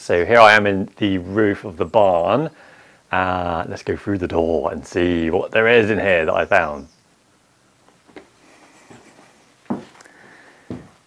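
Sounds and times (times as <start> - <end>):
footsteps on wooden floorboards: 8.0 - 11.0.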